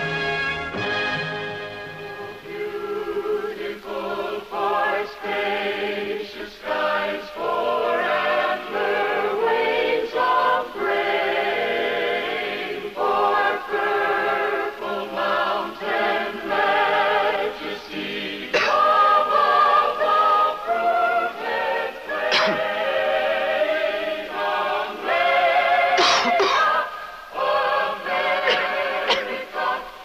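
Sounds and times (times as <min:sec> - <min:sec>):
mixed choir singing: 0:00.8 - 0:30.0.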